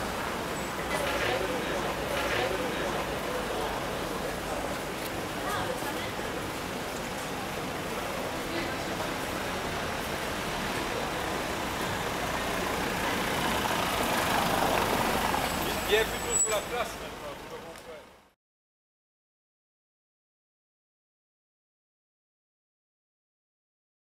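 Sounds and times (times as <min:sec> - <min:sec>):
street traffic noise: 0:00.0 - 0:18.4
car driving over cobblestones: 0:07.1 - 0:18.0.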